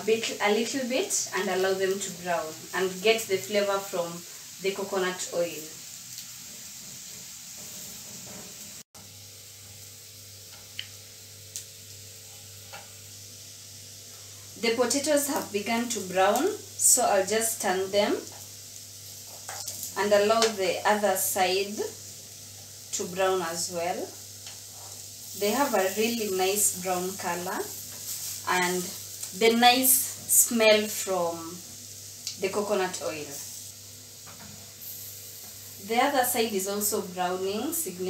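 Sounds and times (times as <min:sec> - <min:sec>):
food sizzling in frying pan: 0:00.0 - 0:38.0
spatula turning food: 0:17.6 - 0:20.5, 0:24.0 - 0:30.7.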